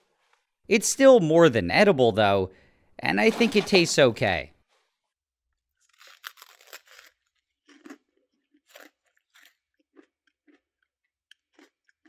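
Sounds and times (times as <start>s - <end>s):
crunchy bite and chewing: 5.8s - 12.0s.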